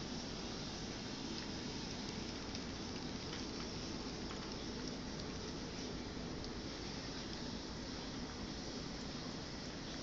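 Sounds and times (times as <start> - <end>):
background hiss: 0.0 - 10.0
cat licking a crock pot: 0.9 - 9.2.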